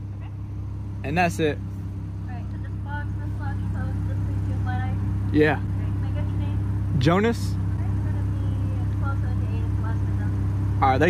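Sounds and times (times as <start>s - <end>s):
intercom speaker electrical hum: 0.0s - 11.0s.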